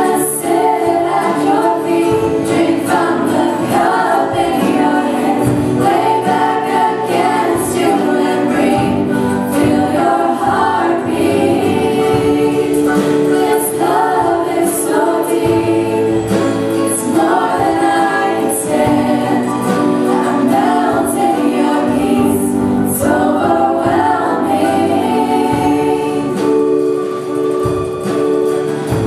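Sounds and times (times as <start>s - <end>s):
choir singing: 0.0s - 29.0s.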